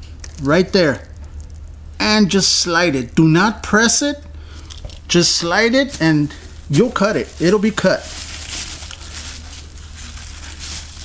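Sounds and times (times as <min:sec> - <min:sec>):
steady low hum: 0:00.0 - 0:11.0
plastic sheeting crinkling: 0:05.8 - 0:11.0.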